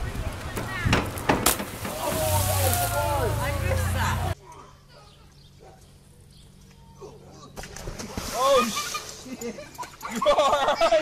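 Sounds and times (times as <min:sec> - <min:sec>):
water splashing out of pool: 0:00.3 - 0:04.3, 0:07.6 - 0:09.3
people exclaiming: 0:01.8 - 0:04.4, 0:08.3 - 0:09.0.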